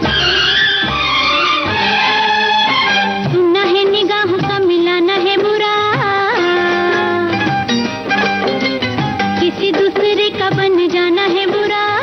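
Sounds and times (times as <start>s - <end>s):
orchestral melody with sliding notes: 0.0s - 3.4s.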